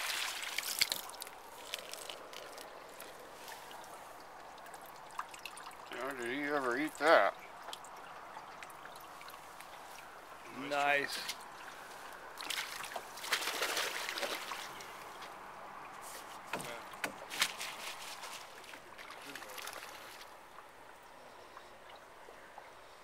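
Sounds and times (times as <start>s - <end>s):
water splashing and sloshing: 0.0s - 23.0s.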